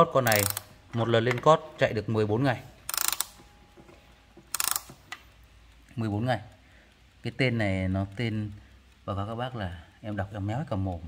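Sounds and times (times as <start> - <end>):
clock winding ratchet clicks: 0.0 - 1.9, 2.5 - 3.8, 4.4 - 11.0.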